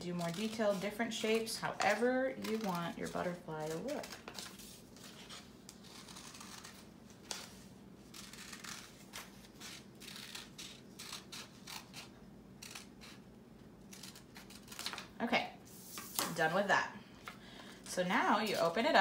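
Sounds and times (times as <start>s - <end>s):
scissors snipping paper: 0.1s - 13.2s, 13.9s - 15.1s.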